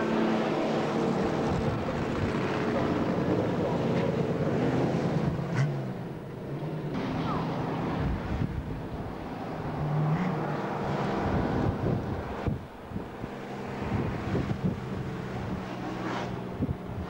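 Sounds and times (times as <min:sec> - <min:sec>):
car engine hum: 0:00.0 - 0:17.0
wind buffeting microphone: 0:01.0 - 0:06.3, 0:06.9 - 0:17.0.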